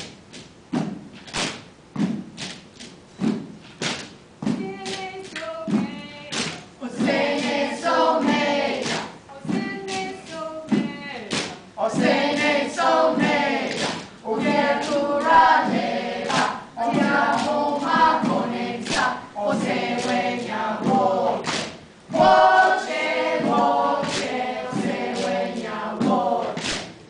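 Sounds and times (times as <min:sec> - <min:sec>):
children and adults singing: 0:04.5 - 0:27.0.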